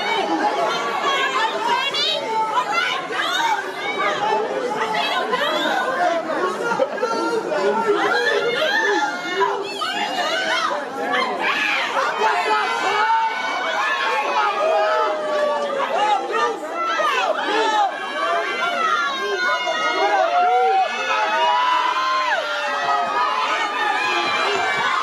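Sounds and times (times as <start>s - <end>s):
crowd talking and calling out: 0.0s - 25.0s.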